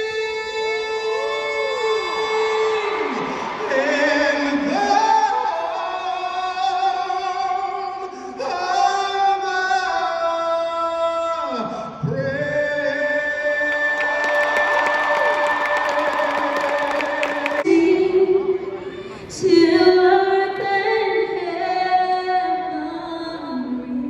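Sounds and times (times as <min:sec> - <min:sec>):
person singing in an arena: 0:00.0 - 0:24.0
crowd cheering: 0:00.9 - 0:06.9, 0:13.4 - 0:17.7.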